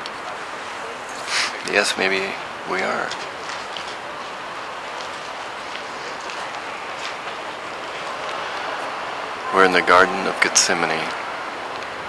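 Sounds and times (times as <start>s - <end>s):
distant city traffic hiss: 0.0s - 12.0s
footsteps on paving: 3.1s - 8.9s.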